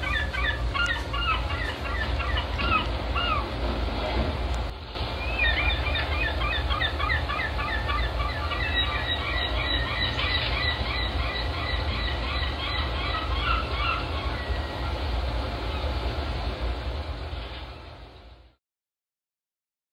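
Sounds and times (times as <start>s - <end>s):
birds chirping: 0.0s - 3.6s, 4.9s - 16.3s
steady low rumble: 0.0s - 18.6s.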